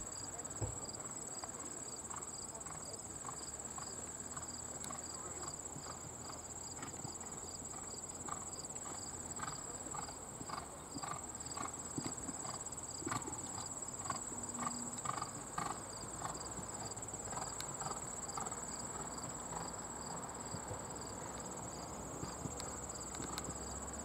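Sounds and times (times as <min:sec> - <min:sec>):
horse hoofbeats on dirt: 0:00.3 - 0:24.0.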